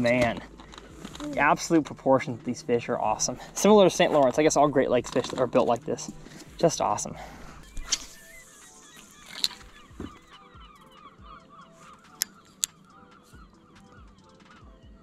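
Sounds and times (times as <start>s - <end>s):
flock of birds calling: 6.2s - 14.7s.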